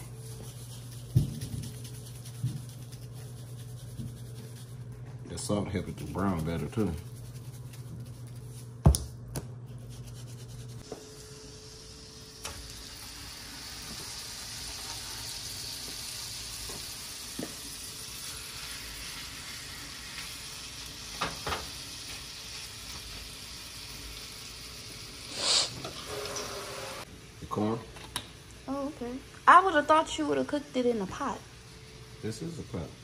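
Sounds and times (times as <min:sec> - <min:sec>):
steaks sizzling in a skillet: 0:11.4 - 0:27.0.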